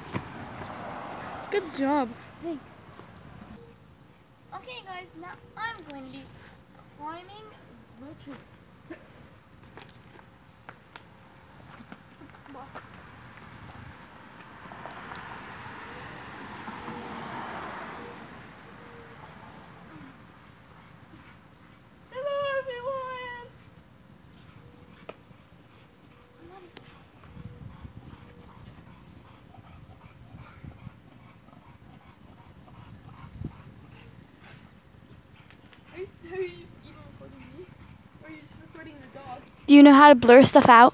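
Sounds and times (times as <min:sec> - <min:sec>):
faint outdoor background: 0:00.0 - 0:40.9.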